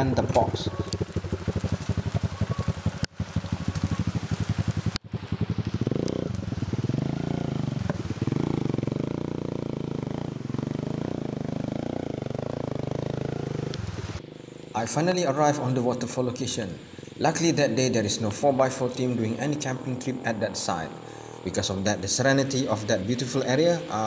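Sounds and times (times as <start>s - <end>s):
motorcycle engine revving: 0.0s - 15.4s.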